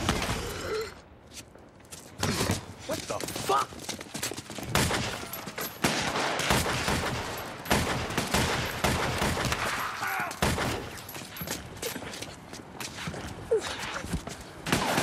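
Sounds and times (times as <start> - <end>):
pistol shots echoing: 4.7 - 11.0.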